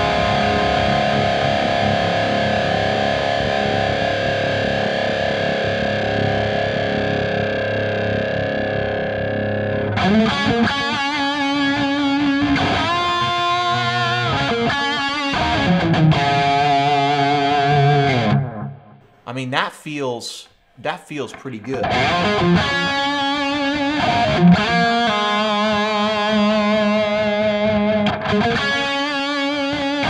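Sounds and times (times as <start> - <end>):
electric guitar lead: 0.0 - 19.1, 21.2 - 30.0.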